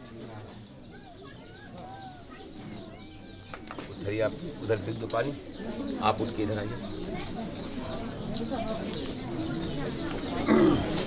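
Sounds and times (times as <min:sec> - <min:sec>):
birds calling: 0:00.0 - 0:11.0
murmur of background voices: 0:00.0 - 0:11.0.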